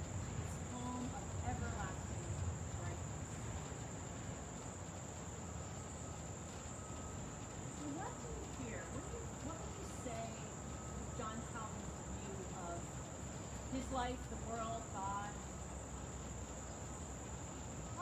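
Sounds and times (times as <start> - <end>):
insects trilling: 0.0 - 18.0.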